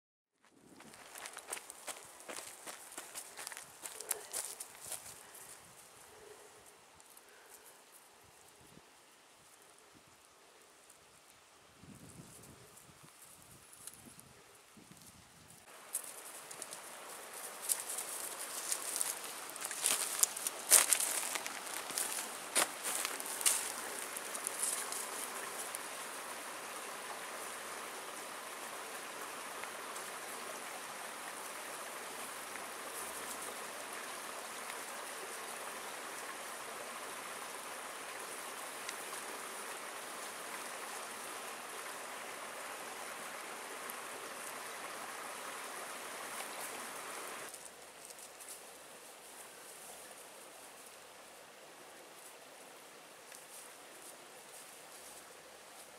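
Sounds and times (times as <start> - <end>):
creek running: 0.4 - 55.9.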